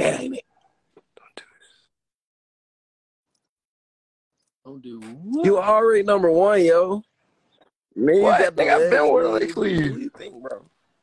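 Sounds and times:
soft whispering voice: 0:01.0 - 0:01.9.

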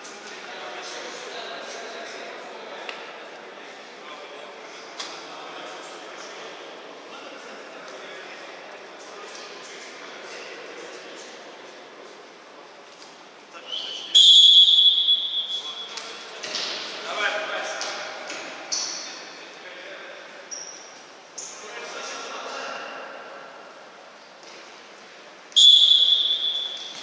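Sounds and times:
referee's whistle blasts: 0:13.7 - 0:15.9, 0:25.6 - 0:27.0.

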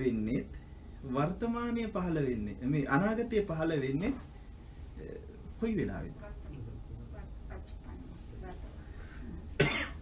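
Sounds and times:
low room hum: 0:00.0 - 0:10.0
person coughing: 0:09.6 - 0:10.0.

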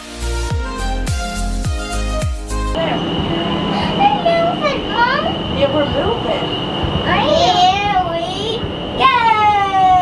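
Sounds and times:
low hum: 0:02.7 - 0:09.7
thin high tone: 0:02.8 - 0:09.2
toddler babbling: 0:07.1 - 0:08.6.

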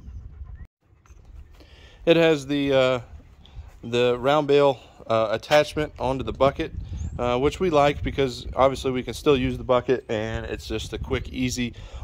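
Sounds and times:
microphone handling noise: 0:02.8 - 0:03.9.

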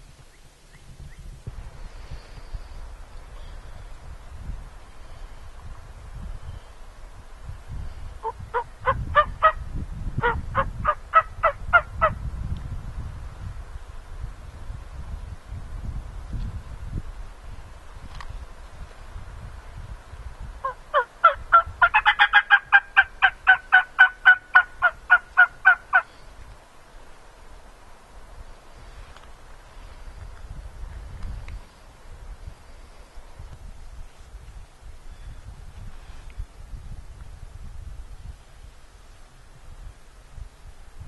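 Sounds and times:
turkey call yelping: 0:08.2 - 0:09.6, 0:10.2 - 0:12.1, 0:20.6 - 0:26.1.

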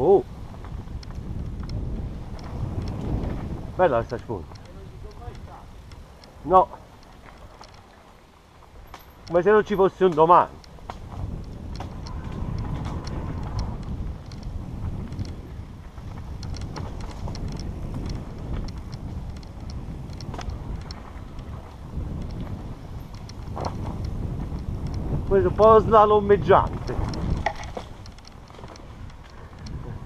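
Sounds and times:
wind rushing on microphone: 0:00.0 - 0:07.8, 0:08.6 - 0:30.0
bike clicks and rattles: 0:00.0 - 0:30.0
tyres rolling over dirt: 0:00.3 - 0:30.0.

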